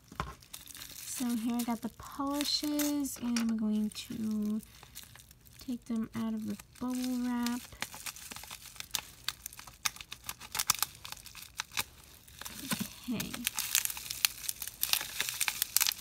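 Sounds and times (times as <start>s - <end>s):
bubble wrap crackling: 0.0s - 16.0s.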